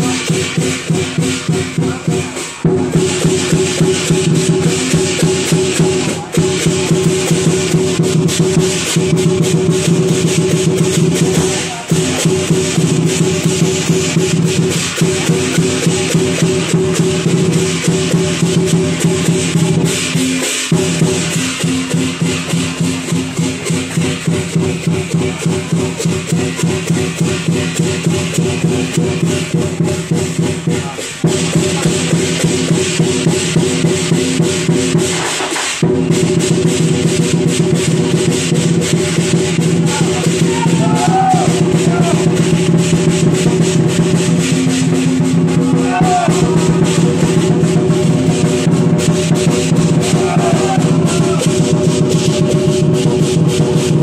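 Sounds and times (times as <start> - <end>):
hand cymbals clashing: 0.0 - 54.0.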